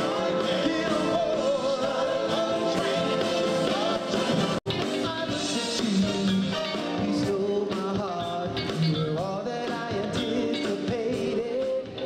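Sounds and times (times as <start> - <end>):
vocal group singing: 0.0 - 8.4
backing band playing: 0.0 - 12.0.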